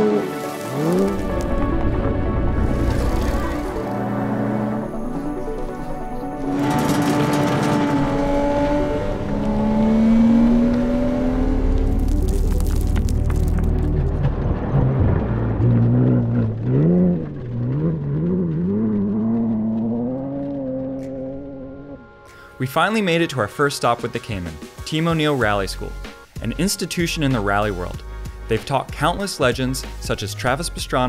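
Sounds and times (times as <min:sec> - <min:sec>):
car engine revving: 0:00.0 - 0:22.2
background music: 0:00.0 - 0:31.0.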